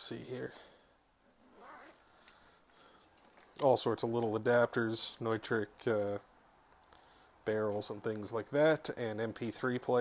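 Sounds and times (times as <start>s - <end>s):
fabric pouch rustling: 1.5s - 2.3s.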